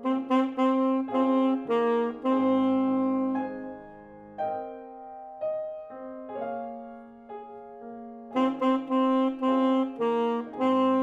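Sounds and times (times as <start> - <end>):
saxophone phrase: 0.0 - 3.7, 8.3 - 11.0.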